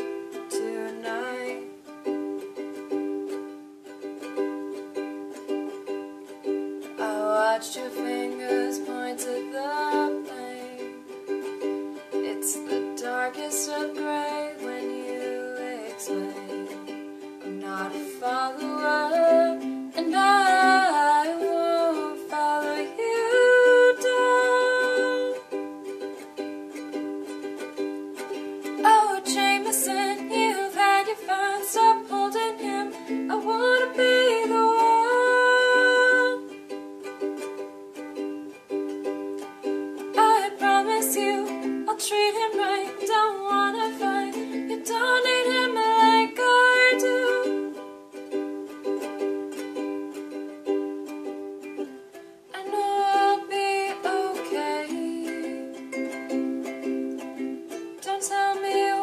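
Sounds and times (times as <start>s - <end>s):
ukulele strumming: 0.0s - 59.0s.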